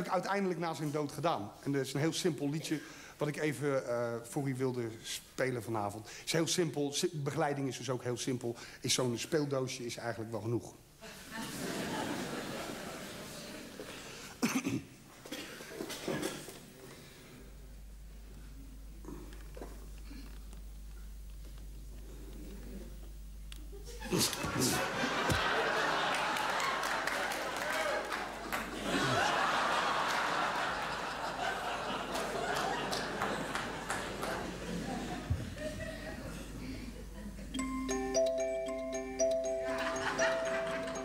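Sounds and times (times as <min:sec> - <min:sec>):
audience laughing: 0:11.1 - 0:13.8, 0:23.8 - 0:37.5, 0:39.7 - 0:41.0
person coughing: 0:14.4 - 0:16.5.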